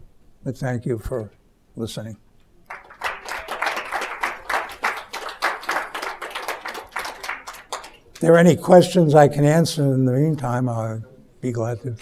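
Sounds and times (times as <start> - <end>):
audience applauding: 2.7 - 8.3.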